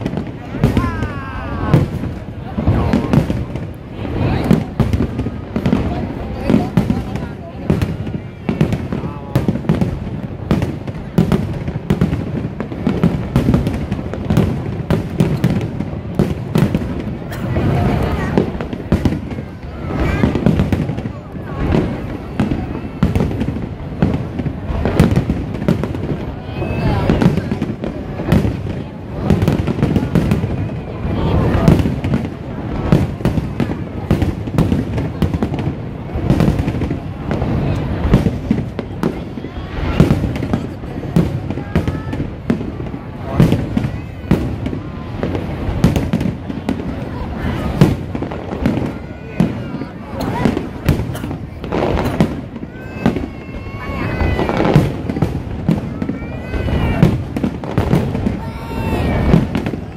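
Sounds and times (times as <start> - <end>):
fireworks bursting with bangs and crackles: 0.0 - 59.9.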